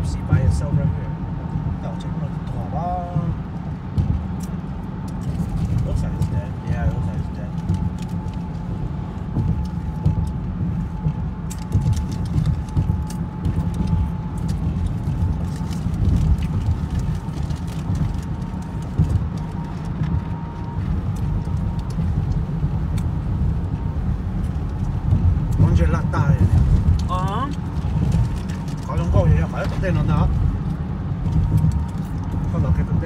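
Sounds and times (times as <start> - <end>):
car road and engine rumble: 0.0 - 33.0.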